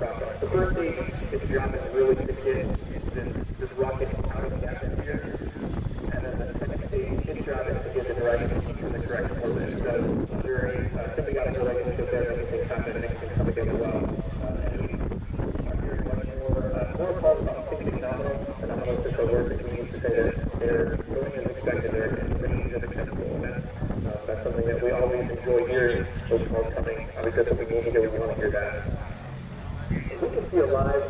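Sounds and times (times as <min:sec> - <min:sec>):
indistinct voices talking: 0:00.0 - 0:31.0
steady low noise: 0:00.0 - 0:31.0.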